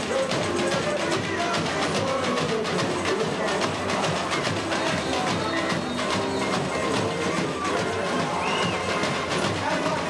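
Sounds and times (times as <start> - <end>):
samba drum section: 0.0 - 10.0
voices singing: 0.0 - 10.0.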